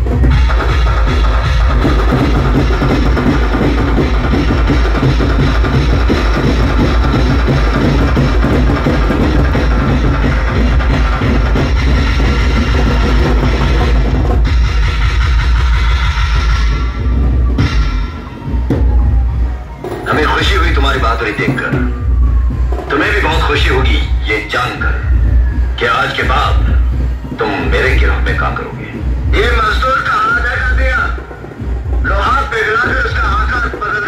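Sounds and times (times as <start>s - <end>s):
loud amplified music with bass: 0.0s - 34.0s.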